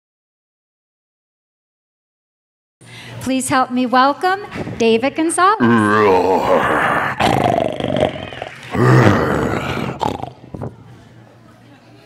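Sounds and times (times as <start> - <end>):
lion roars: 5.6 - 10.4.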